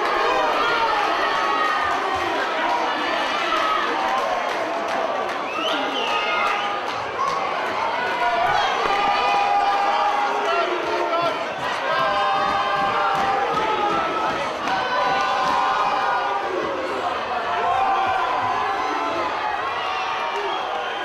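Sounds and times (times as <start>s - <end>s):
crowd shouting and cheering: 0.0s - 21.0s.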